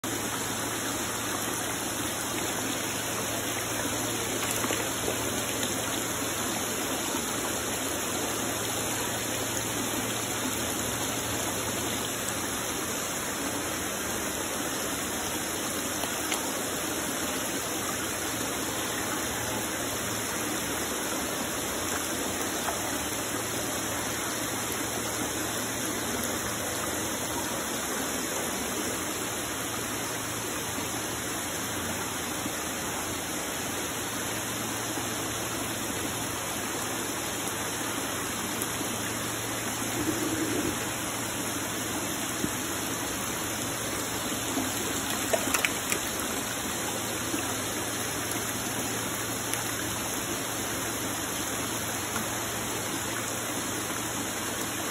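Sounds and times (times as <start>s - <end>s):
churning water splashing in tubs: 0.4s - 13.2s, 42.4s - 54.7s.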